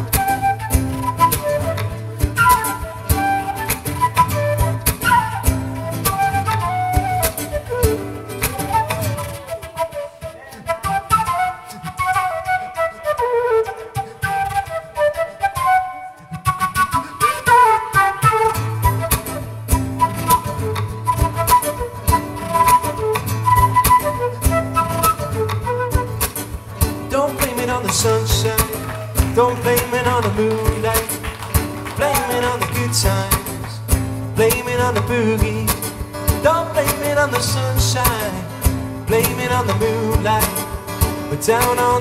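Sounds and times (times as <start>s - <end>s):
flute playing a melody: 0.0s - 30.0s
acoustic guitar strumming: 0.0s - 42.0s
rhythmic percussive beat: 18.8s - 42.0s
man singing: 27.0s - 42.0s.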